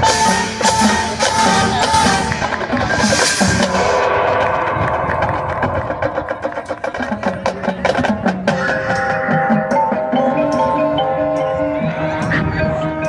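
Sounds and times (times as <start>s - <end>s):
drum and percussion strokes: 0.0s - 13.0s
marching band playing: 0.0s - 13.0s
cymbal crash: 3.2s - 7.4s.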